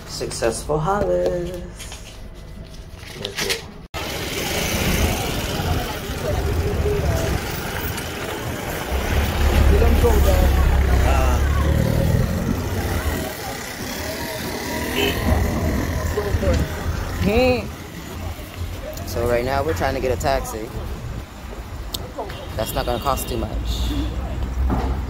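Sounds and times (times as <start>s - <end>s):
street traffic noise: 0.0s - 25.0s
car engine rumbling: 3.7s - 21.9s
people talking: 4.4s - 20.8s, 22.0s - 24.4s.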